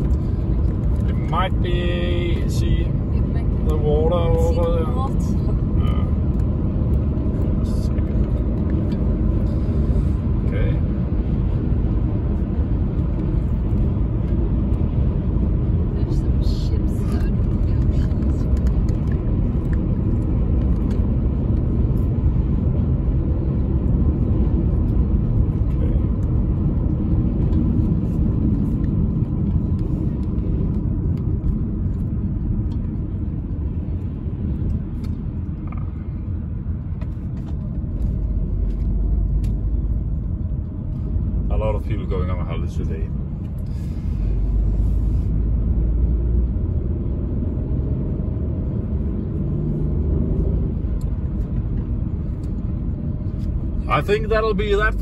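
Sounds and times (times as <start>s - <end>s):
road and engine rumble in car: 0.0s - 55.0s.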